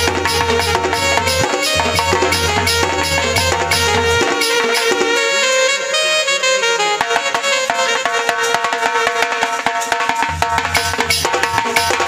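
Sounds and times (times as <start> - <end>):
fast hand-drum playing: 0.0 - 5.4, 7.1 - 12.0
folk music: 0.0 - 9.6.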